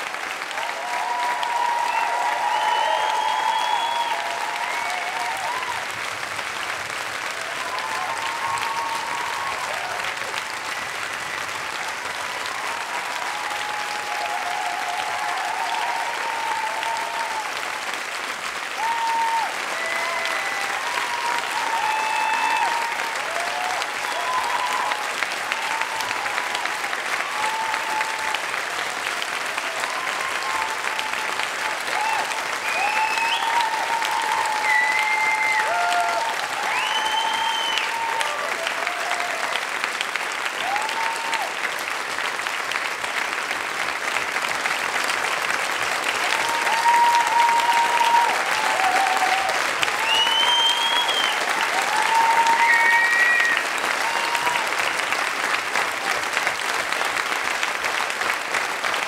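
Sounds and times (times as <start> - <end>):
audience applauding: 0.0 - 59.0
whoops and cheers: 0.2 - 6.1, 7.2 - 10.5, 12.2 - 17.9, 18.7 - 39.8, 40.4 - 41.8, 46.2 - 55.2.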